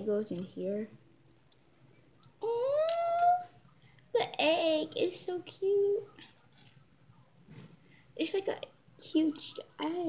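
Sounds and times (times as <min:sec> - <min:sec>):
girl speaking excitedly: 0:04.2 - 0:06.2, 0:08.2 - 0:10.0.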